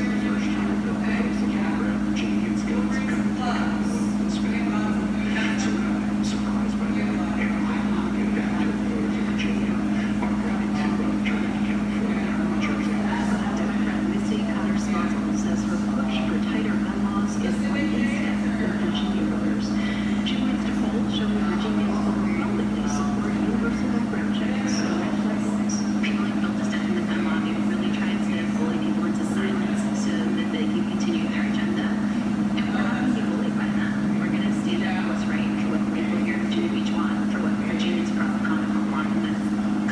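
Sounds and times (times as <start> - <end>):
washing machine motor hum: 0.0 - 39.9.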